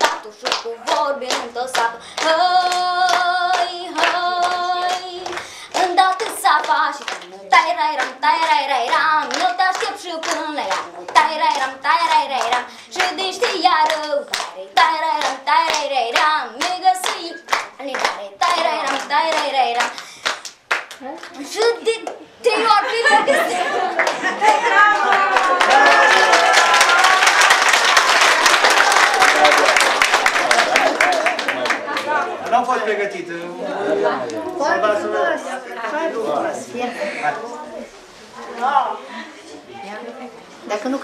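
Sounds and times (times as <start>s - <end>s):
girl singing: 0.0s - 20.0s, 21.2s - 23.5s
children clapping: 0.0s - 22.2s, 23.8s - 32.3s.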